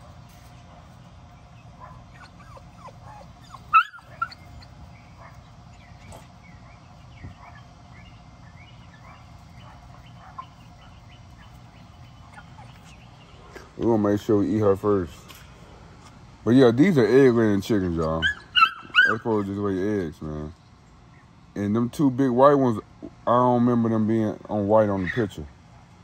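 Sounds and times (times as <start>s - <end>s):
young chickens chirping: 0.4s - 14.6s
dog yelping: 1.7s - 8.0s, 8.9s - 11.0s, 18.2s - 19.3s
dog whimpering and whining: 2.1s - 4.7s.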